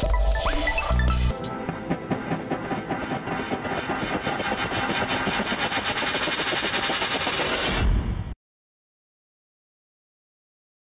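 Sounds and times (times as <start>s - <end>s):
rapidly pulsing electronic texture: 0.0s - 8.0s.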